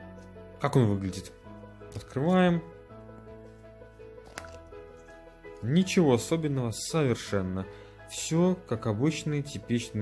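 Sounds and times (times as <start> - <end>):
soft background music: 0.0 - 10.0
plastic cap pulled off: 4.2 - 5.1.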